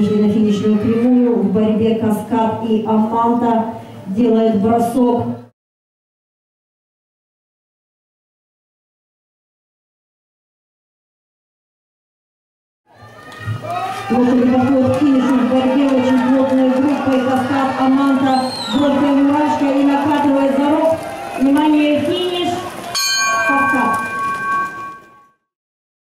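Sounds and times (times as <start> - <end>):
crowd shouting and cheering: 12.9 - 25.2
finish bell ringing: 23.0 - 25.4.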